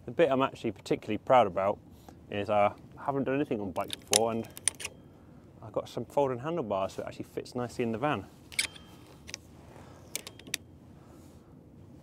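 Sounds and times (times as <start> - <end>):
handlebar folding clicks: 3.8 - 4.9, 8.5 - 9.4, 10.1 - 10.6.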